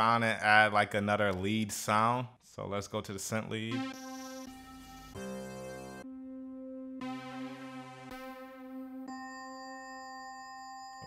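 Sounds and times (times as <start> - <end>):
synthesizer lead sounds: 3.7 - 9.1.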